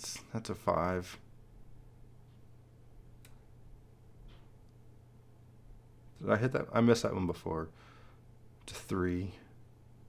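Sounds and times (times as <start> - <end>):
low hum: 0.0 - 10.0
computer mouse click: 3.2 - 3.4.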